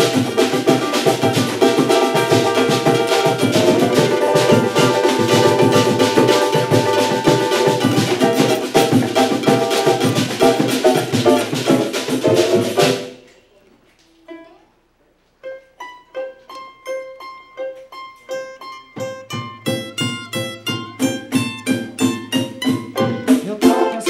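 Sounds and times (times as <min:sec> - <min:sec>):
hand drum and bass drum: 0:00.0 - 0:13.2, 0:19.0 - 0:24.0
banjo strumming: 0:00.0 - 0:13.3, 0:15.4 - 0:24.0.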